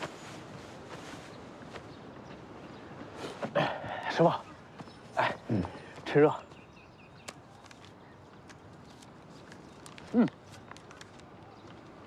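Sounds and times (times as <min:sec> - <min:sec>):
man speaking: 0:05.2 - 0:06.5.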